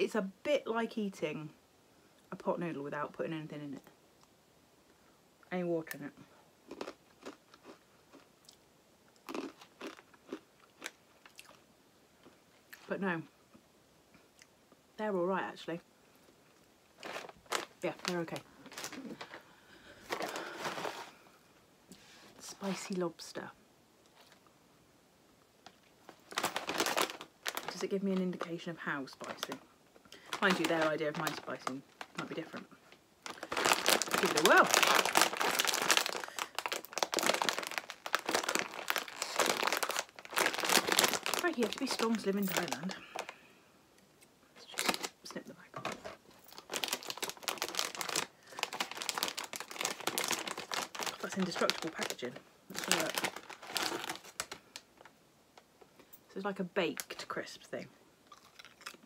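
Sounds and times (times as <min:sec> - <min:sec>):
foil packet crinkling: 0:17.0 - 0:21.2, 0:26.0 - 0:43.4, 0:44.6 - 0:55.1.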